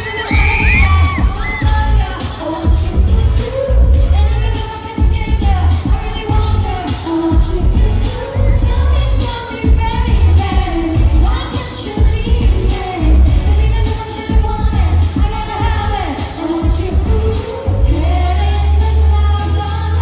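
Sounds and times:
pop backing music with bass beat: 0:00.0 - 0:20.0
woman singing into a microphone: 0:00.0 - 0:20.0.

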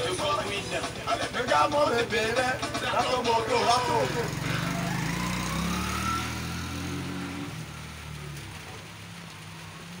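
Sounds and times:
motorcycle engine pulling away: 0:03.6 - 0:08.9.

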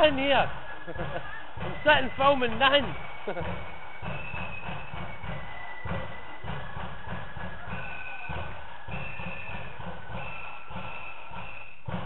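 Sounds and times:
high flute melody: 0:00.0 - 0:12.0
steady drum beat: 0:00.0 - 0:12.0.

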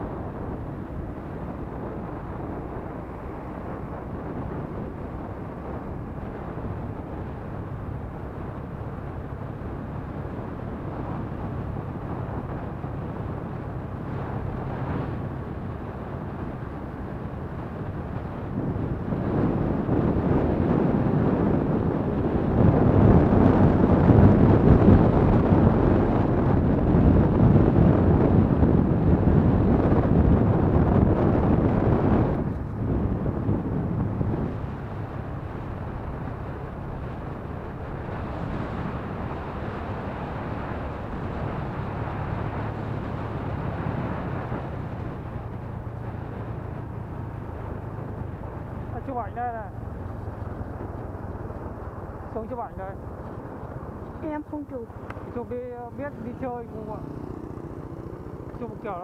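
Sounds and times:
scooter engine hum: 0:00.0 - 0:59.0
tyres on road: 0:00.0 - 0:59.0
wind on microphone: 0:00.0 - 0:59.0.

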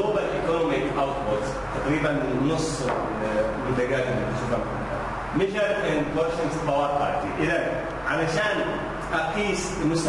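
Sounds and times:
man lecturing: 0:00.0 - 0:10.0.

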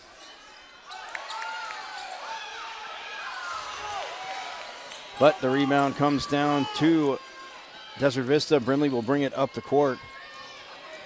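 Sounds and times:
shouts and voices: 0:05.2 - 0:11.0.

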